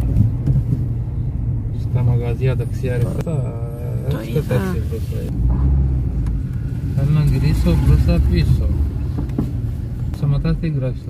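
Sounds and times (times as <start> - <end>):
engine and road noise: 0.0 - 11.0.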